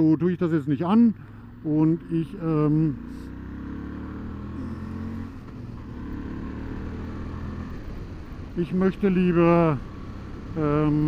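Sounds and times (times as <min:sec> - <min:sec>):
motorcycle engine running: 0:00.7 - 0:11.0.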